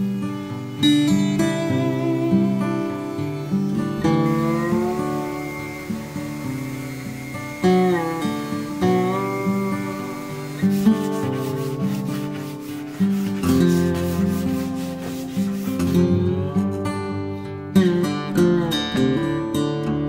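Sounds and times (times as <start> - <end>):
acoustic guitar music: 0.0 - 20.0
sandpaper rubbing on wood: 0.1 - 16.3.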